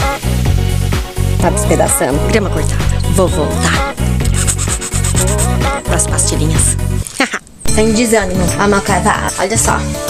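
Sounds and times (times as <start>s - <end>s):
quick high hissing beats: 0.0s - 5.8s
music with heavy bass line: 0.0s - 6.9s.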